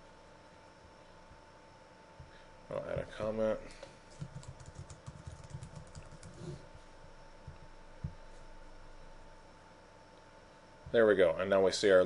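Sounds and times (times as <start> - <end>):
typing on computer keyboard: 4.2 - 6.4.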